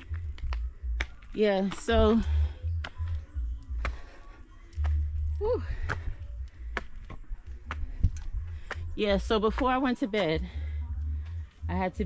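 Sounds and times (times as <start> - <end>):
footsteps on stone stairs: 0.0 - 11.5
steady low rumble: 0.0 - 12.0.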